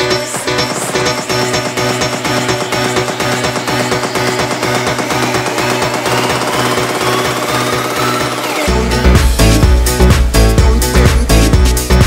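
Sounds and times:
synth sweep rising in pitch: 0:00.0 - 0:10.1
pulsing synth riff: 0:00.0 - 0:12.0.

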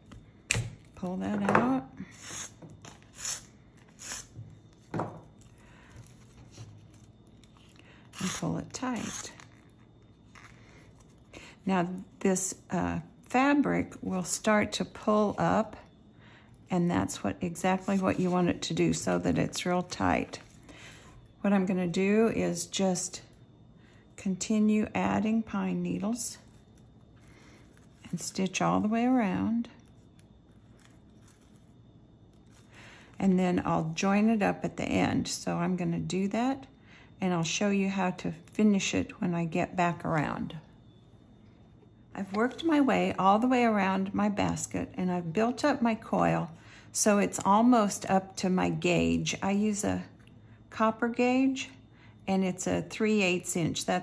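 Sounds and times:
faint clicks and rustles of thread: 0:29.7 - 0:33.2.

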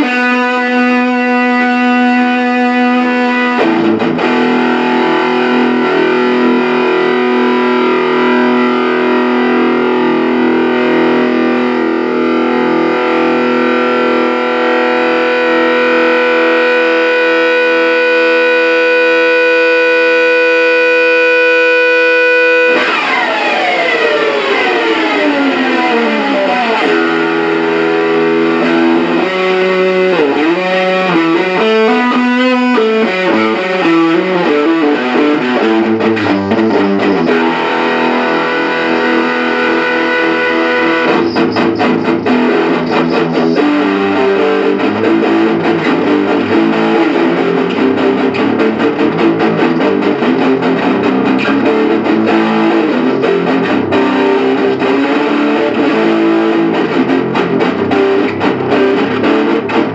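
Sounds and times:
distorted electric guitar: 0:00.0 - 0:59.9.

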